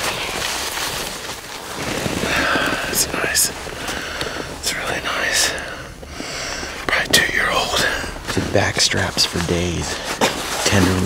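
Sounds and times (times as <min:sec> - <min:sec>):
people whispering: 0:02.2 - 0:11.0.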